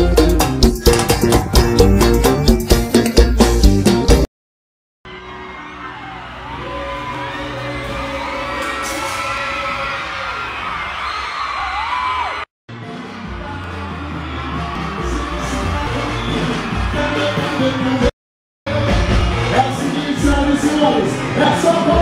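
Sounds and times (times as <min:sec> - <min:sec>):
live percussive dance music: 0:00.0 - 0:04.2, 0:13.3 - 0:18.1
crowd whooping and cheering: 0:05.1 - 0:18.1.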